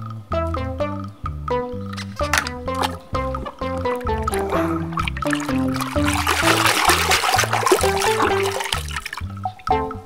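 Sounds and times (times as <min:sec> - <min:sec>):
background music with plucked bass: 0:00.0 - 0:10.0
hand splashing in soapy water: 0:02.7 - 0:03.0, 0:03.8 - 0:09.2.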